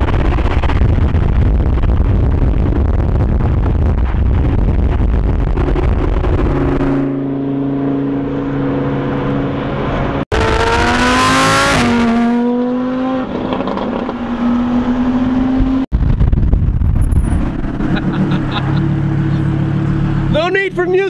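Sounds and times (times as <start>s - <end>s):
wind noise: 0.0s - 18.8s
sports car engine revving: 5.4s - 15.9s.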